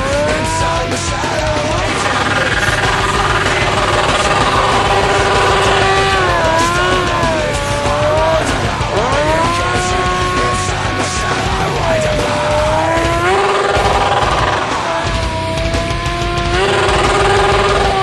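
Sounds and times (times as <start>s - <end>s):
motorcycle engine revving: 0.0s - 18.0s
rock music: 0.0s - 18.0s.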